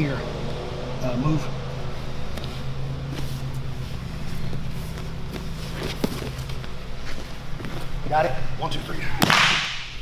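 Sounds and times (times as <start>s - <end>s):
low room hum: 0.0s - 10.0s
people scuffling on foam mat: 1.9s - 8.4s.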